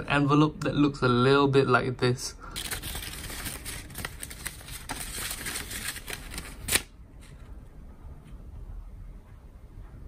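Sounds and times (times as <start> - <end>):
paper crackle: 2.6 - 7.4
paper rustling and crinkling: 2.6 - 7.5.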